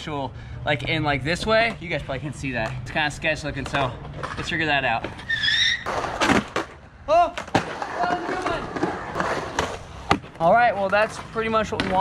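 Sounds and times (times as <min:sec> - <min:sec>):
skateboard rolling on concrete: 0:00.7 - 0:12.0
skateboard clacks and scrape: 0:03.6 - 0:06.8, 0:07.4 - 0:12.0
high squeal: 0:05.2 - 0:05.9.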